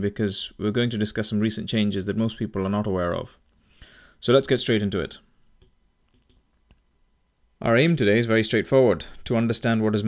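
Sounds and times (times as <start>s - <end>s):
faint clicks: 5.6s - 6.9s.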